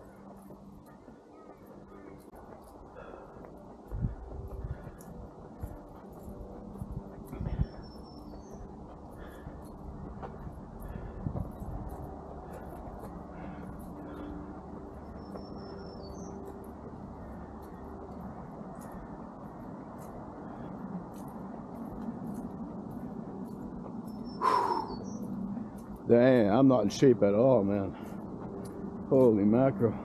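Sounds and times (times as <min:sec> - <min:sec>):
person breathing heavily: 0:00.0 - 0:15.4, 0:16.1 - 0:26.0, 0:27.9 - 0:29.1
low background rumble: 0:00.0 - 0:26.2
footsteps on paved trail: 0:00.0 - 0:30.0
bird chirp: 0:04.5 - 0:09.8, 0:12.5 - 0:17.9, 0:23.4 - 0:26.6.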